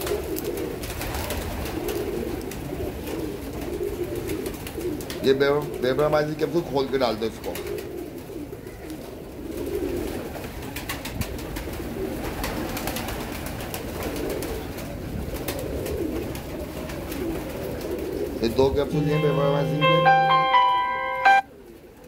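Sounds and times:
pigeons cooing: 0.0 - 19.0.

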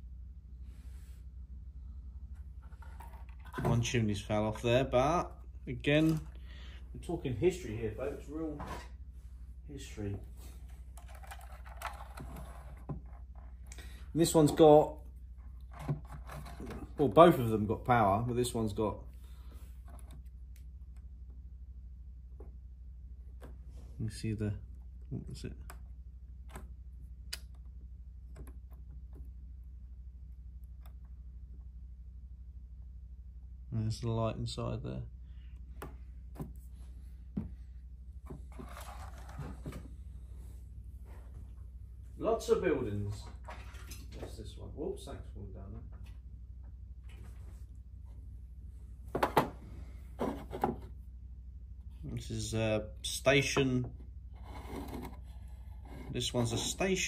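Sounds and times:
steady low hum: 0.0 - 57.0
plastic model rubbing on wooden table: 11.3 - 13.6, 54.3 - 56.8.

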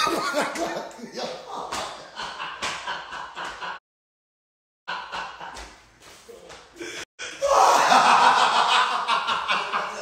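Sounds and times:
man laughing hard: 6.9 - 10.0.

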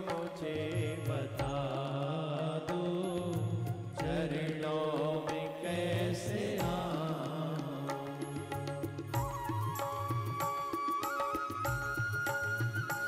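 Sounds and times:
man singing devotional song: 0.0 - 9.4
percussion strikes: 0.0 - 13.0.

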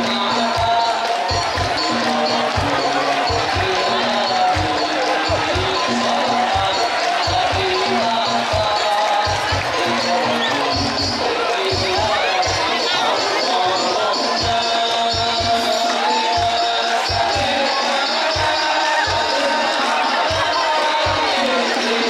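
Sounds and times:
voices in music: 0.0 - 22.0.

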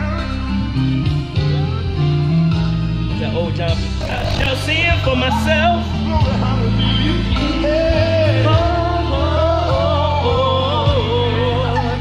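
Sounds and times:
electric keyboard chords: 4.0 - 4.6
bass line: 4.0 - 4.7.

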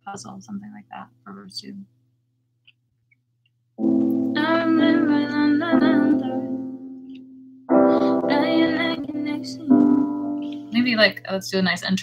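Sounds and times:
piano chords: 3.8 - 11.2
woman singing: 4.3 - 6.8, 7.8 - 11.2.

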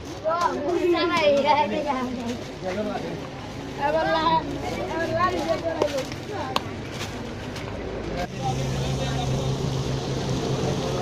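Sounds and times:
background chatter of voices: 0.0 - 11.0.

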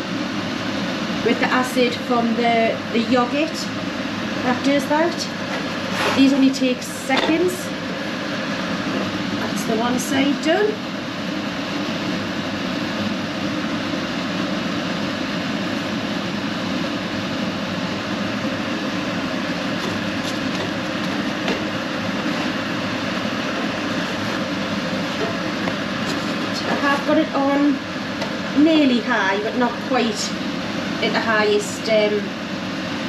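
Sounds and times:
extractor fan running: 0.0 - 33.0.

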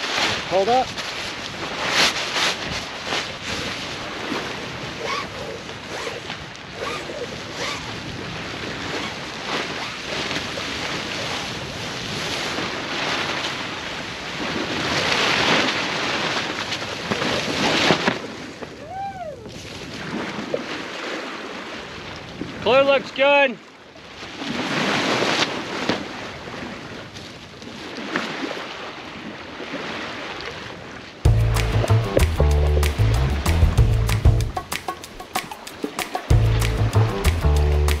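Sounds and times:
sail cloth and lines rustling: 0.0 - 23.2
sea wash: 0.0 - 38.0
brief squeak: 5.0 - 6.2, 6.8 - 7.9.

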